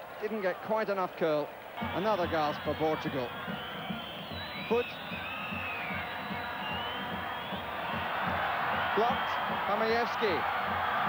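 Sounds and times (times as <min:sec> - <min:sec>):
stadium crowd din: 0:00.0 - 0:11.0
long whistles: 0:01.8 - 0:09.6.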